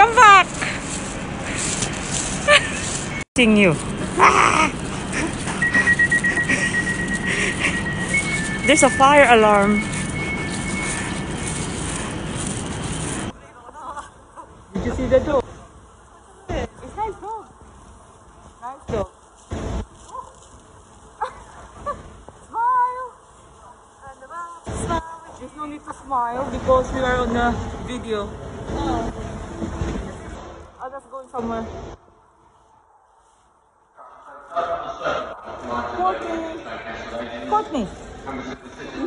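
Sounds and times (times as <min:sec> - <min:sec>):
short bursts of noise: 0:00.0 - 0:13.4
low steady hum: 0:00.0 - 0:39.0
electronic alarm tone: 0:05.5 - 0:11.7.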